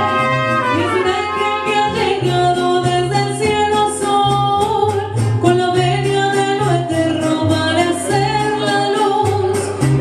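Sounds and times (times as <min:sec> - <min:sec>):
mariachi band playing and singing: 0:00.0 - 0:10.0.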